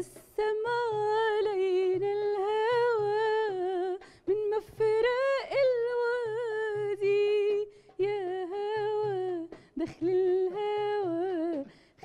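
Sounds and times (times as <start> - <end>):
soft darbuka drum beats: 0.0 - 12.0.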